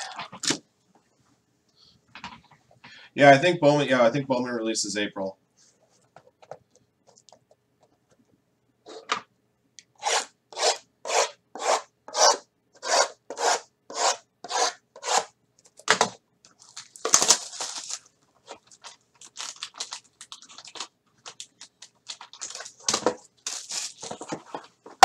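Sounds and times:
rasping strokes: 10.0 - 15.3
cardboard rustling and handling: 16.5 - 25.0.

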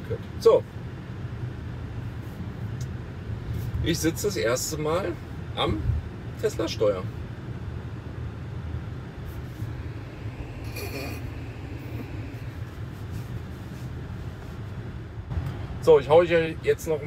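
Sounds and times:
road and tyre rumble: 0.0 - 17.0.

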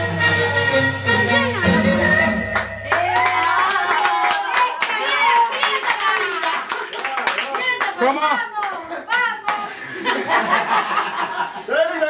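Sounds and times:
group clapping hands: 2.6 - 9.7
excited voices: 2.9 - 10.7.

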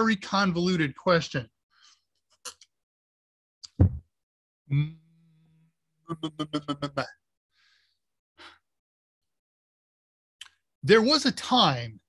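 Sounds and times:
man breathing softly: 7.5 - 8.7.

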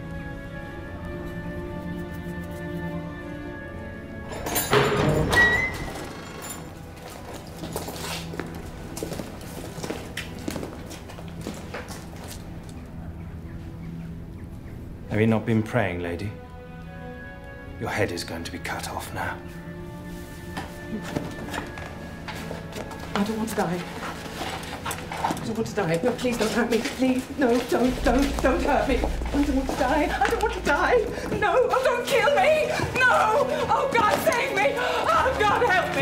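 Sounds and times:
film score music: 0.0 - 36.0.

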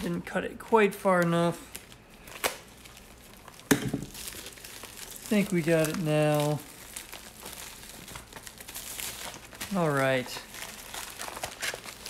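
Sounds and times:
packaging crinkling: 0.0 - 12.0.

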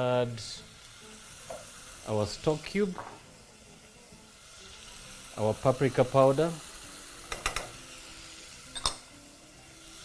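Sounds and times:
oil sizzling in a pot: 0.0 - 10.0.

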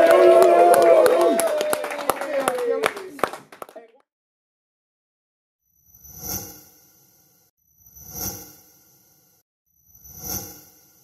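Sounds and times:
audience clapping: 0.0 - 4.0.

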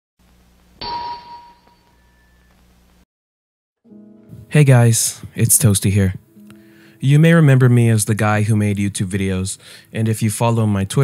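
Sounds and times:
bright bell ding: 0.8 - 2.5.

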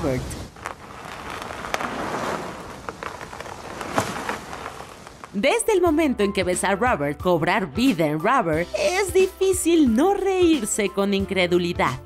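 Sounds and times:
tyre rolling over gravel: 0.0 - 5.9.

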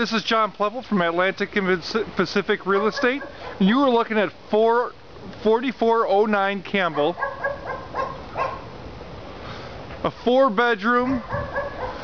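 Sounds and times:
dog barking: 2.7 - 3.6, 6.9 - 8.7, 11.1 - 12.0.

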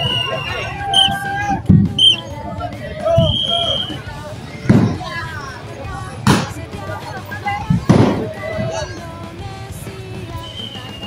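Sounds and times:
low thud: 4.7 - 5.0
sharp bang: 6.3 - 6.6.

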